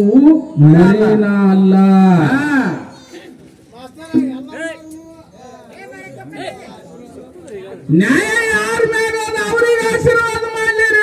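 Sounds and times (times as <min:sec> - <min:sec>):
low voices chattering: 0:00.4 - 0:11.0.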